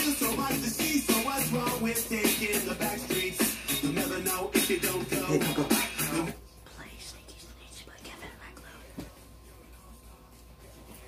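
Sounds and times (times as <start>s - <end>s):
faint whispered speech: 6.6s - 11.0s.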